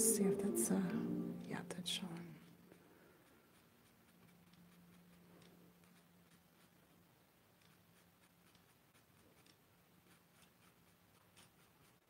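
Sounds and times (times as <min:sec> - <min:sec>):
faint low hum: 0:00.0 - 0:12.0
paint brush scratching canvas: 0:02.4 - 0:12.0.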